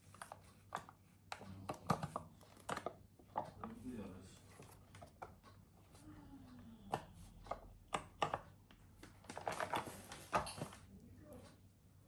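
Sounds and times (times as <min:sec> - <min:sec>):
candle molds clacking on metal tray: 0:06.8 - 0:08.8.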